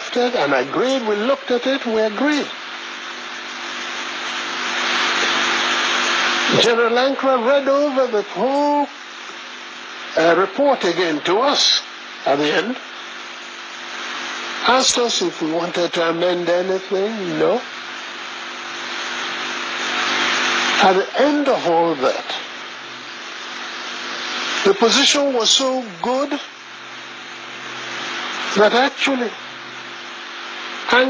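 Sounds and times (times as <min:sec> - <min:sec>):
faint steady hum: 0:00.0 - 0:31.0.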